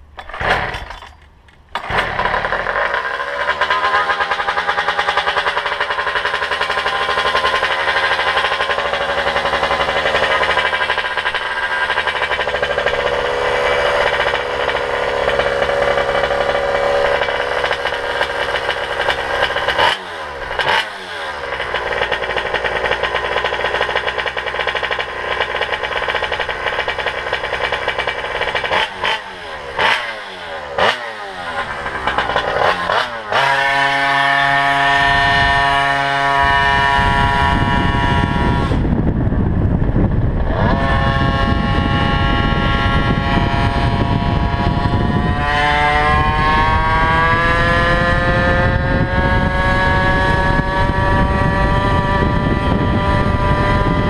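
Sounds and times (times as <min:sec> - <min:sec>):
two-stroke engine high buzz: 0:00.0 - 0:54.0.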